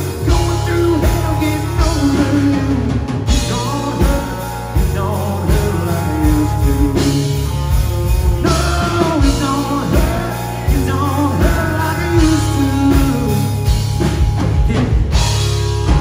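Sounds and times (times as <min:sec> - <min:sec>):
man singing: 0:00.0 - 0:15.4
bass guitar: 0:00.0 - 0:16.0
drum kit: 0:00.0 - 0:16.0
electric guitars: 0:00.0 - 0:16.0.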